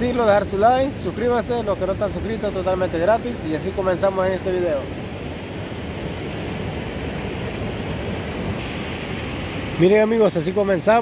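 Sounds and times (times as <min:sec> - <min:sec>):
low surf rushing: 0:00.0 - 0:11.0
wind rumbling on microphone: 0:00.0 - 0:11.0.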